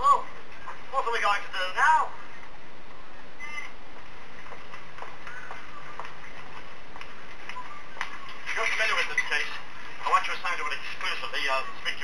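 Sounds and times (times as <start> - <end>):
man speaking: 8.5 - 12.0.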